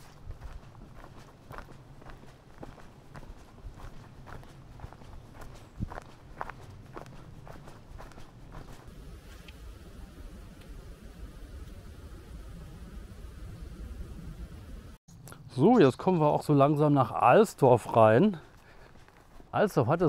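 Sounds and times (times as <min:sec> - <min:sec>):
footsteps crunching dry leaves: 0:00.0 - 0:09.4.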